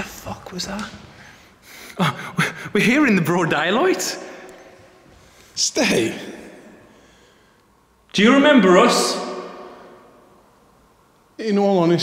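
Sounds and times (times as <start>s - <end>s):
man calling out with echo: 2.0s - 4.5s, 5.6s - 6.9s, 8.1s - 10.0s.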